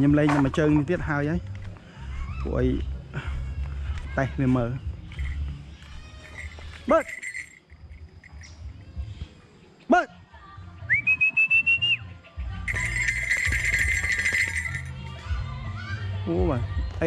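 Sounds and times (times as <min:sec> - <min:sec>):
person whistling: 0:10.9 - 0:12.0.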